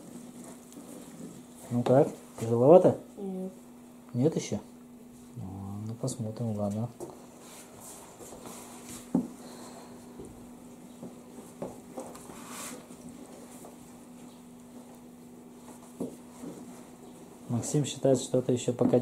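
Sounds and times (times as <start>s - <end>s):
paddle stirring thick batter: 0.0s - 2.4s
steady low hum: 0.0s - 19.0s.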